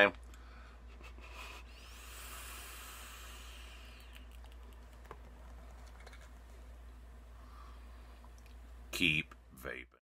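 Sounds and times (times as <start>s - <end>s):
airy hiss of vape drag: 1.8s - 4.1s.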